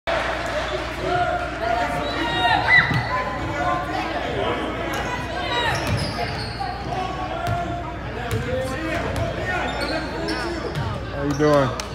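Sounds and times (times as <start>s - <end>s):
many voices talking: 0.1s - 11.9s.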